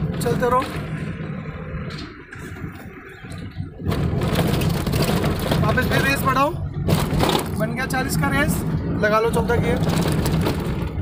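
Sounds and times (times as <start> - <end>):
tyre rumble on rough road: 0.0 - 11.0.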